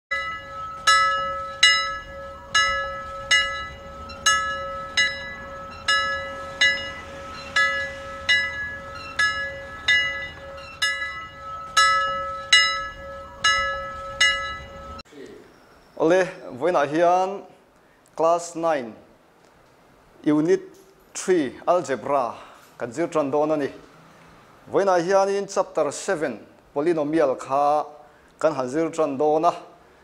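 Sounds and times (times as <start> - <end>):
bell-like chime ringing: 0.1 - 15.0
steady held tone: 0.1 - 16.0.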